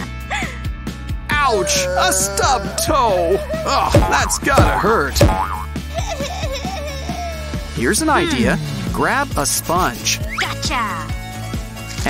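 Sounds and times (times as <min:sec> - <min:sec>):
pained whimper: 0:01.3 - 0:05.0
background music with beat: 0:03.5 - 0:05.8
cartoon boing: 0:03.9 - 0:05.7.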